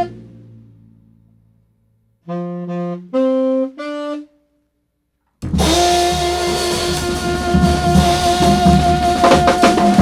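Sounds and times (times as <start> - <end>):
tenor saxophone long note: 0.0 - 0.8, 2.2 - 4.5, 5.6 - 10.0
drum kit: 5.4 - 10.0.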